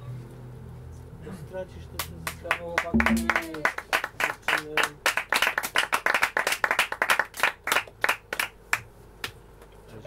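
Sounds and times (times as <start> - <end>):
hands clapping: 2.0 - 9.4.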